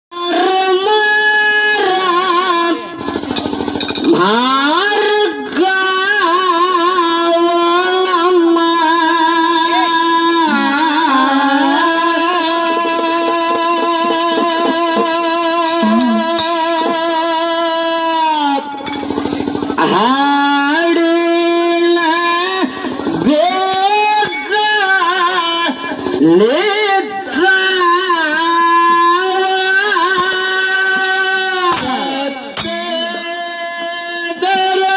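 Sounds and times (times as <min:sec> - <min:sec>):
fast even drumbeat: 0:01.6 - 0:05.3, 0:06.0 - 0:17.8, 0:18.7 - 0:33.5
woman singing into microphone: 0:04.1 - 0:17.2.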